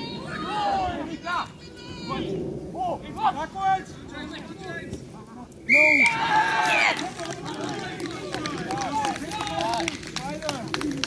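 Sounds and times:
distant players calling and shouting: 0.0s - 11.0s.

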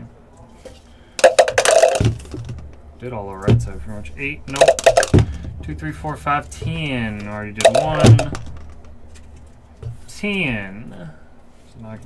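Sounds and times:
dice rattling in plastic cup: 1.2s - 2.6s, 4.5s - 5.3s, 7.6s - 8.9s.

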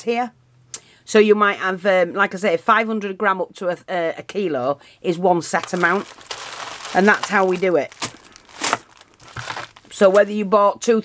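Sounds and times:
plastic bags crinkling: 5.4s - 10.4s.

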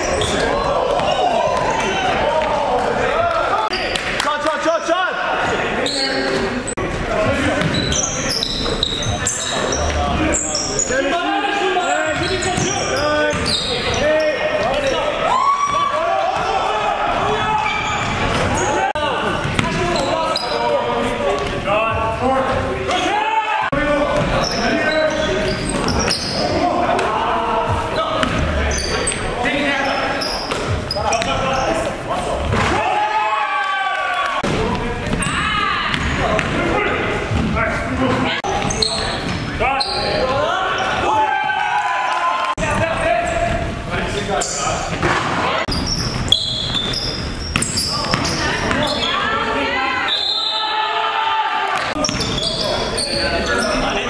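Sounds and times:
sneakers squeaking: 0.0s - 4.0s, 5.4s - 32.8s, 34.4s - 41.1s, 42.6s - 50.8s, 51.8s - 54.0s
players calling out: 0.0s - 54.0s
basketball bouncing: 19.4s - 19.9s, 24.1s - 24.4s, 27.7s - 28.6s, 35.9s - 36.6s.

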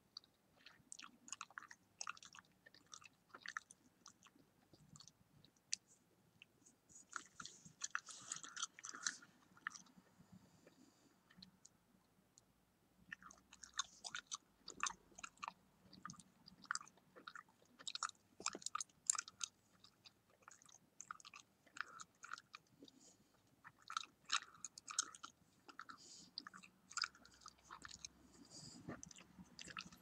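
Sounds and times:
gum chewing wet smacks: 0.1s - 10.0s, 13.1s - 30.0s.

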